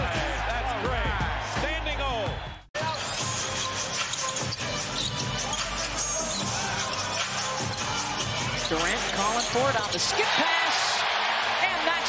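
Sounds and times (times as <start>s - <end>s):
arena crowd noise: 0.0s - 3.0s, 5.5s - 12.0s
music playing: 0.0s - 10.4s.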